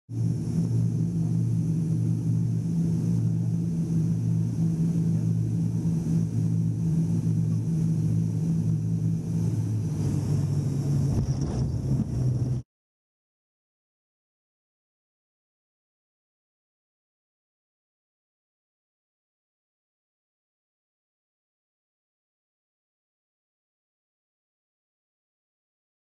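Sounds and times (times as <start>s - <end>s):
turboprop engine drone and whine: 0.1s - 12.6s.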